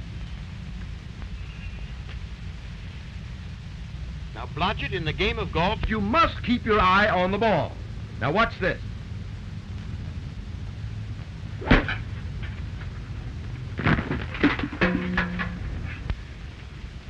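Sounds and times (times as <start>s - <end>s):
film soundtrack hum and hiss: 0.0s - 17.0s
golf club striking ball: 11.6s - 12.2s.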